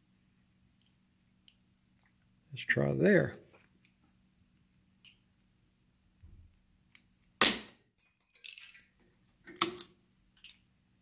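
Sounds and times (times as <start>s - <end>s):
ringing metal clink: 8.0s - 9.0s.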